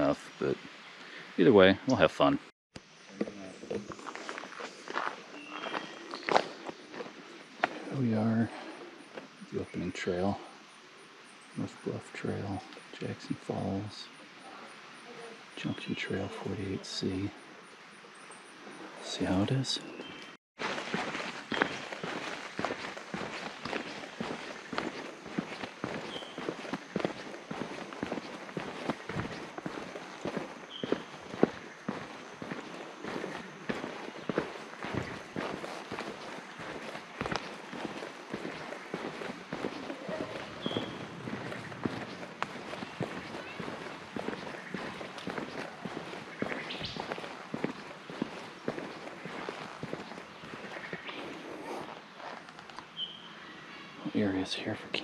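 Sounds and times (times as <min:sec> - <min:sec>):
footsteps on dirt trail: 0:03.2 - 0:09.4, 0:19.1 - 0:53.1.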